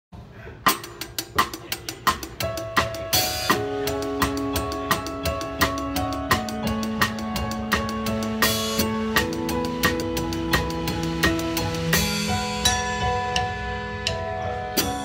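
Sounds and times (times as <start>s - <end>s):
drum kit beat: 0.6s - 15.0s
band playing held notes: 0.8s - 15.0s.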